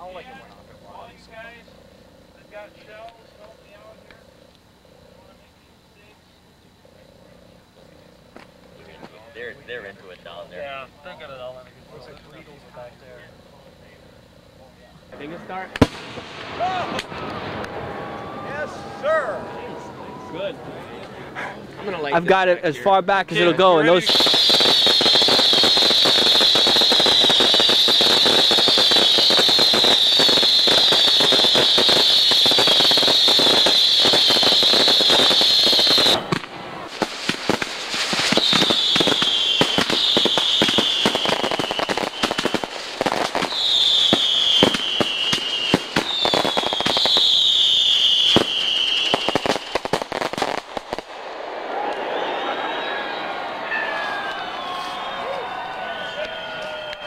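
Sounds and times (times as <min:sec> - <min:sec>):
fireworks crackling: 0:00.0 - 0:19.8, 0:23.3 - 0:57.0
firework whistles: 0:15.1 - 0:20.5, 0:23.4 - 0:57.0
firework shell bangs: 0:24.2 - 0:51.1.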